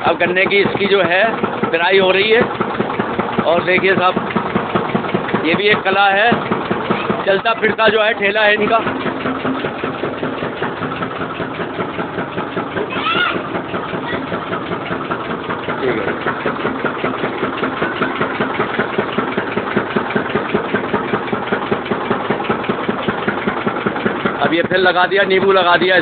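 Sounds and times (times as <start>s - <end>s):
sugarcane juice crusher running: 0.0s - 26.0s.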